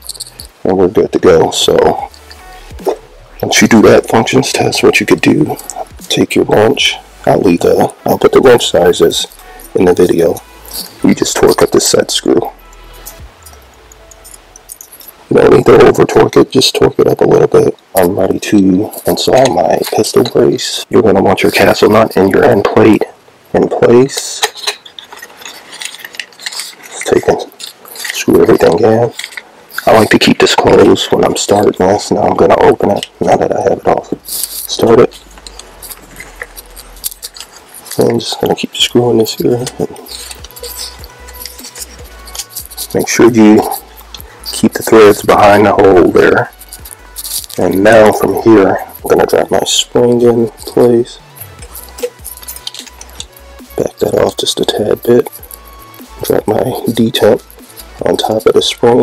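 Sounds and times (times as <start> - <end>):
light metallic clicks and rattles: 0.0 - 0.6, 24.1 - 31.6, 34.2 - 59.0.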